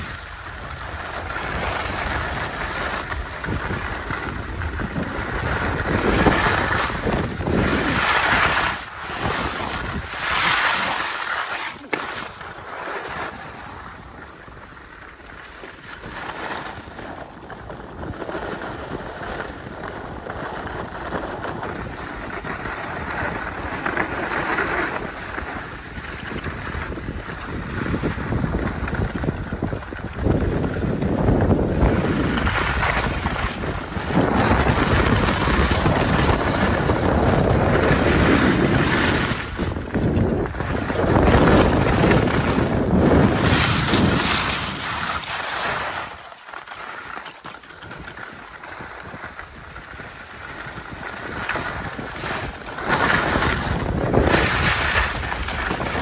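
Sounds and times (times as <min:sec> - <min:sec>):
wind on microphone: 0:00.0 - 0:46.3, 0:47.7 - 0:56.0
skis scraping on snow: 0:00.0 - 0:56.0.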